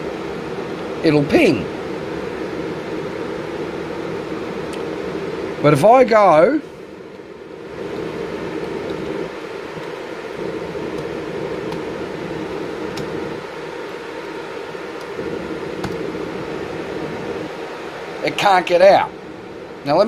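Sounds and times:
computer fans whirring: 0:00.0 - 0:20.0.

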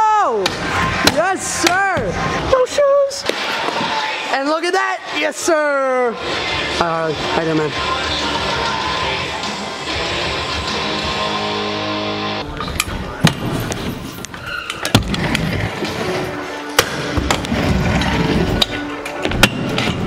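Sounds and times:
music: 0:00.1 - 0:20.0
wheels rolling on wooden ramp: 0:13.4 - 0:20.0.

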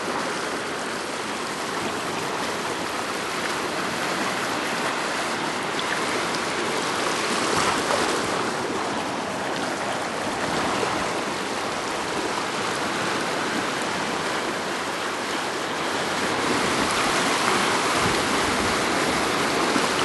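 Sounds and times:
seawater washing over rocks: 0:00.0 - 0:20.0.

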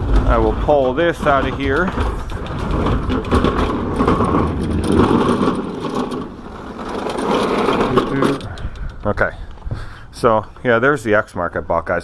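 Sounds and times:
mower rattling across wooden floor: 0:00.0 - 0:09.6
mower wheels rumbling: 0:00.0 - 0:11.1.

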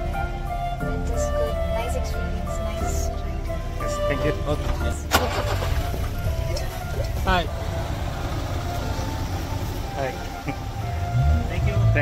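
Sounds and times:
background music: 0:00.0 - 0:12.0
vehicle engine low rumble: 0:00.0 - 0:12.0.

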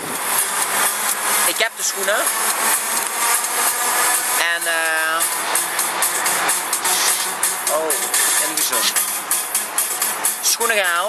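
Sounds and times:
car engine: 0:00.0 - 0:11.0
road noise inside car: 0:00.0 - 0:11.0.

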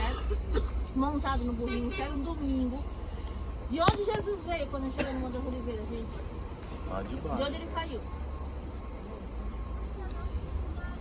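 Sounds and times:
low steady outdoor rumble: 0:00.0 - 0:11.0.

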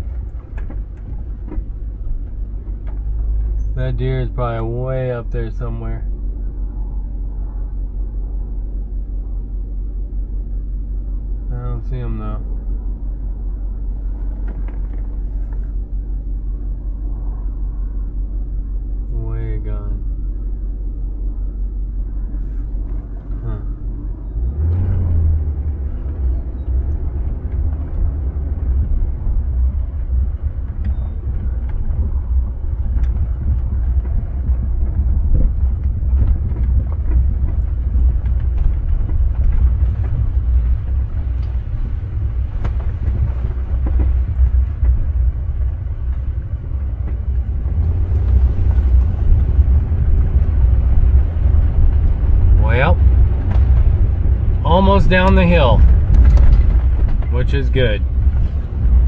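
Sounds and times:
car rumbling over dirt trail: 0:00.0 - 0:59.0.

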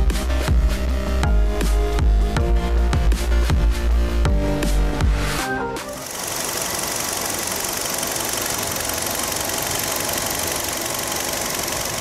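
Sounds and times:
background music: 0:00.0 - 0:06.2
car engine idling: 0:06.0 - 0:12.0.

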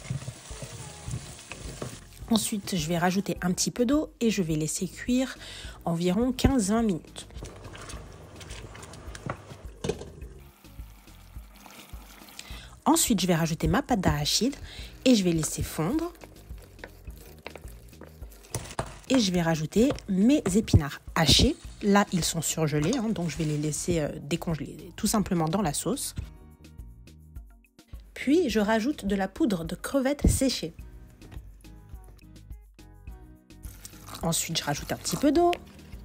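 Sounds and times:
food sizzling in oil: 0:00.0 - 0:02.8, 0:07.0 - 0:12.8, 0:14.2 - 0:24.4, 0:33.5 - 0:36.0
wooden spoon stirring thick sauce: 0:00.0 - 0:02.9, 0:07.0 - 0:09.8, 0:14.1 - 0:24.5, 0:33.7 - 0:36.0
wooden spatula scraping a pot: 0:00.0 - 0:03.2, 0:06.7 - 0:10.4, 0:14.2 - 0:24.7, 0:33.7 - 0:36.0.

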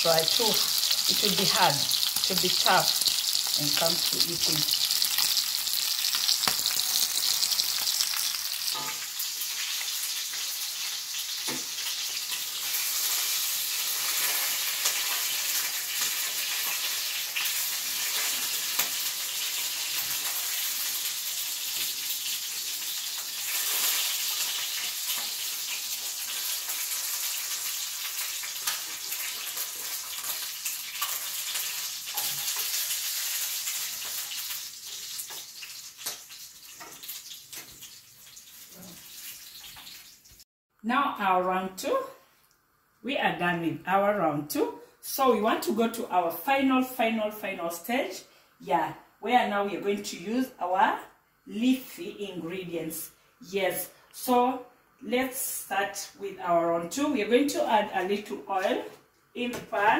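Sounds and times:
chicken sizzling in a pan: 0:00.0 - 0:40.4.

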